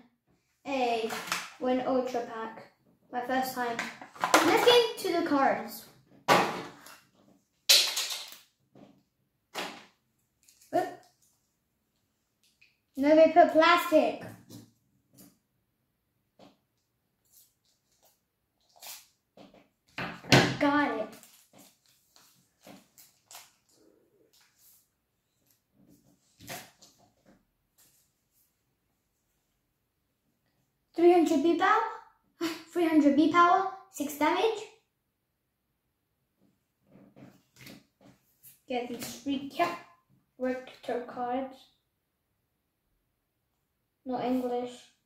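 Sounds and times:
plastic packaging rustling: 21.0 - 23.8
plastic wrapper crinkling: 21.0 - 23.8.

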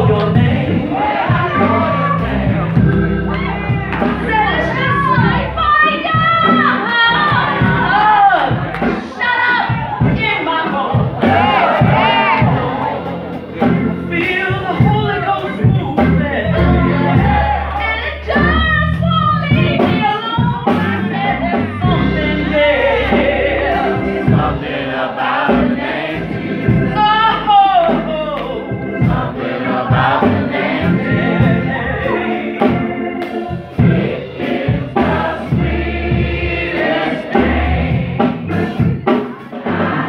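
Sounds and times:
organ: 0.0 - 9.0, 10.9 - 40.0
congregation singing and calling out: 0.0 - 40.0
gospel music with low beat: 0.0 - 40.0.

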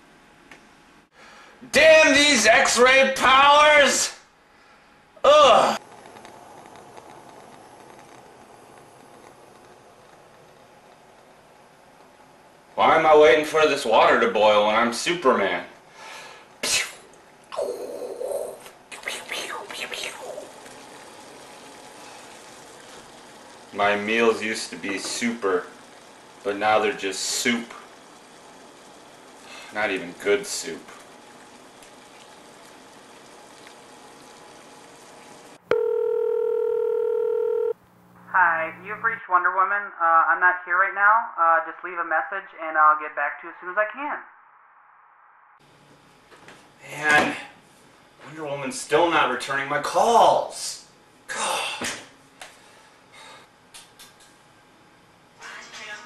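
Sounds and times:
gas stove burner hissing: 5.8 - 17.2, 20.2 - 35.6
telephone ringback tone: 35.7 - 37.8.

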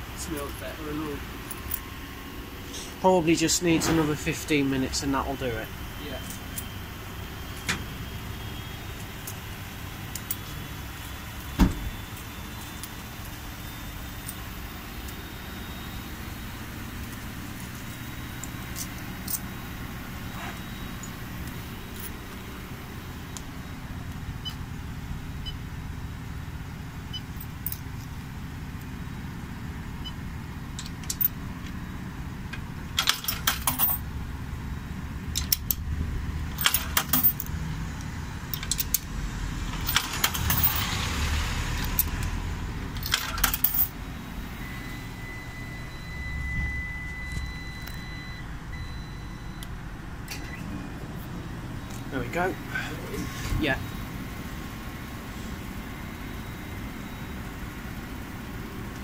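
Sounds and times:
washers and dryers humming: 0.0 - 59.0
payment kiosk clicks and rattles: 32.9 - 34.0, 36.5 - 37.5, 39.7 - 41.1, 42.9 - 43.9
thin electronic tone: 44.0 - 49.7.

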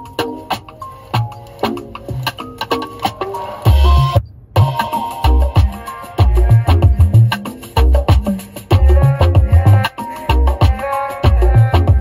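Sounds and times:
loud music through car speakers: 0.0 - 12.0.

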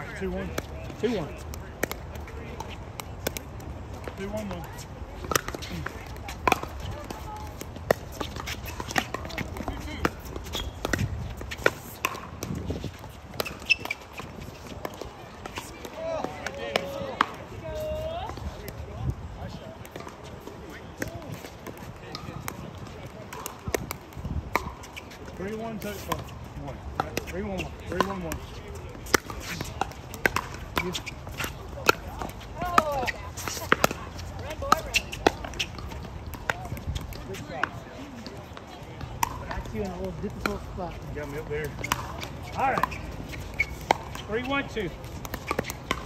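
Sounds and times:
ball bouncing on court: 0.0 - 17.5, 19.4 - 46.0.

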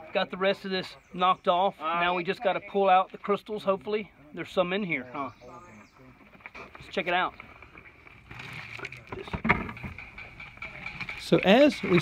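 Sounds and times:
rock rubble scraping and clinking: 6.5 - 12.0.

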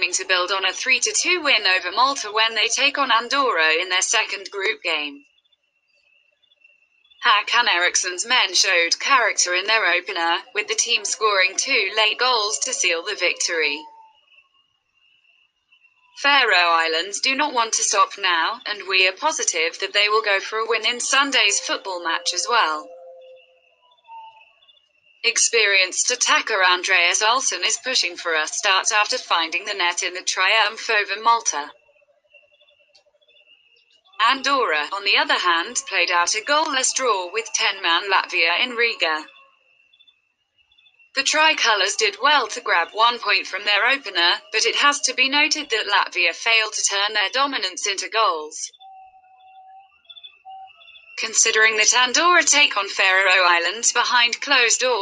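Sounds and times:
person narrating: 0.0 - 5.2, 7.2 - 13.8, 16.2 - 22.9, 25.3 - 31.7, 34.2 - 39.3, 41.2 - 48.7, 51.2 - 55.0
faint high steady tones: 0.0 - 39.9, 40.5 - 55.0
steady higher tone: 18.8 - 24.4
soft electronic notes: 20.4 - 24.4.

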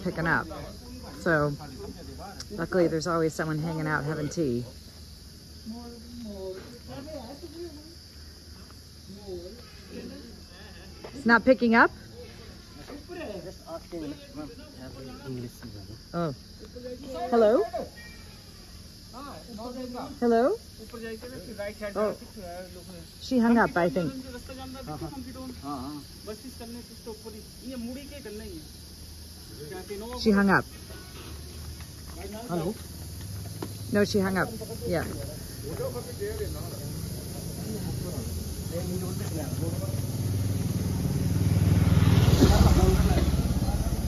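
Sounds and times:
insects chirring: 0.0 - 44.0.

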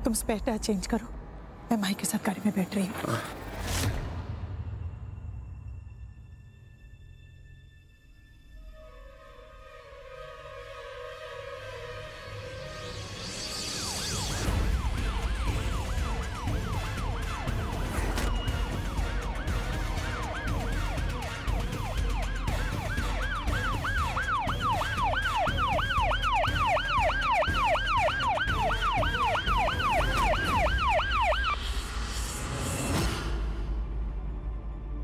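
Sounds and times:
police siren yelping: 13.8 - 31.6.

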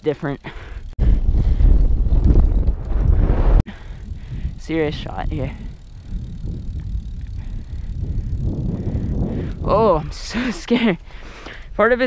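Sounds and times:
bicycle tyres rolling on asphalt: 0.4 - 11.4
wind on microphone: 1.0 - 10.4.

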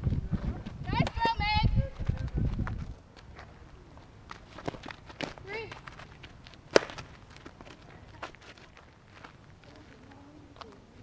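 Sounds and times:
footsteps on dirt: 0.0 - 11.0
low outdoor background: 0.0 - 11.0.

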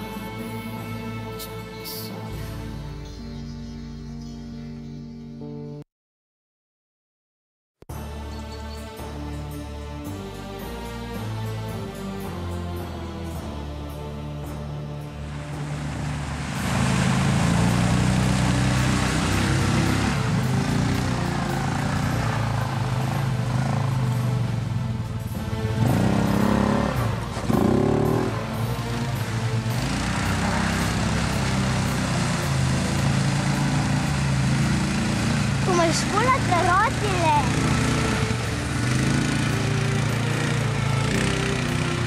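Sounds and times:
background music: 0.0 - 5.8, 7.9 - 42.0
atv engine revving: 15.2 - 42.0
tyres splashing through slush: 15.3 - 23.5, 28.3 - 41.4.

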